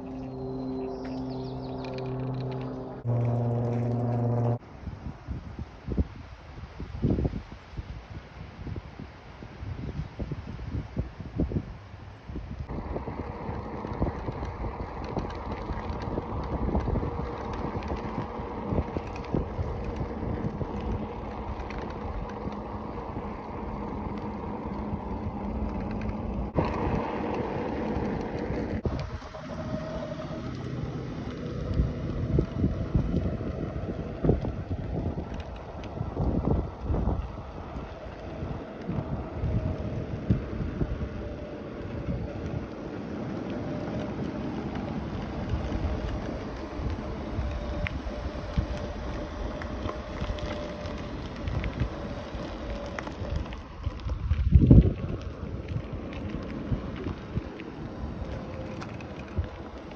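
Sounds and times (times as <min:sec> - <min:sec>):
bicycle road rumble: 0:00.0 - 0:59.9
wind buffeting microphone: 0:00.0 - 0:59.9.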